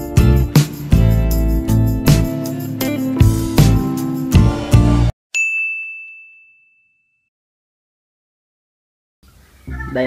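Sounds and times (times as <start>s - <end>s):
strummed guitar music: 0.0s - 5.1s.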